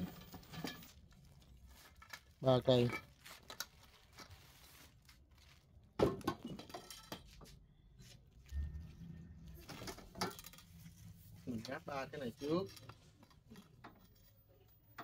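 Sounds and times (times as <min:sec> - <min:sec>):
metal tubes clinking together: 0:01.9 - 0:03.8, 0:06.3 - 0:07.4, 0:09.6 - 0:15.0.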